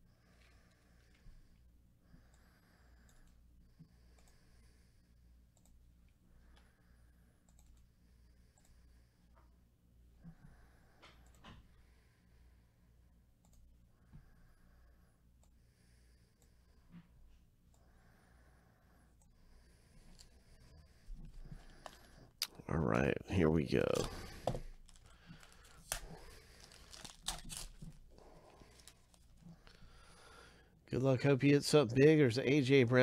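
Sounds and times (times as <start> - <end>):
faint clicks of foil pack: 20.1 - 20.4, 23.9 - 29.8
trading cards rustling: 23.7 - 29.9.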